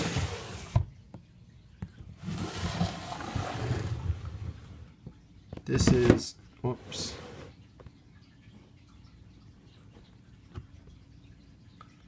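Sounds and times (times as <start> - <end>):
plastic tubs scraping on shelves: 0.0 - 0.9, 2.2 - 4.9, 5.7 - 7.6.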